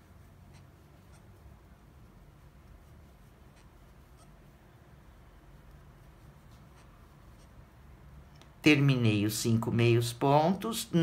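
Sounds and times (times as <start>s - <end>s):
crochet hook scratching yarn: 0.0s - 8.3s.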